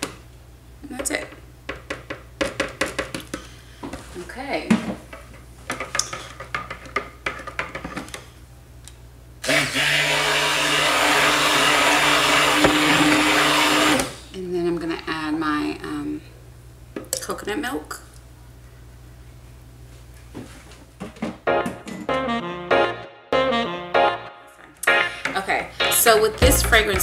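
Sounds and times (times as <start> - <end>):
stick blender running: 9.4 - 14.2.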